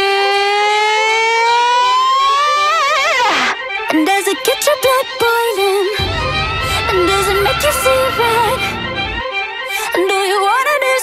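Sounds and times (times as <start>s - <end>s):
pop song with held vocal note: 3.5s - 11.0s.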